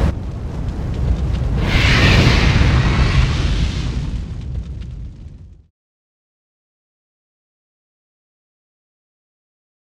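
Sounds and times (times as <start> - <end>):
deep explosion-like boom: 0.0 - 5.7.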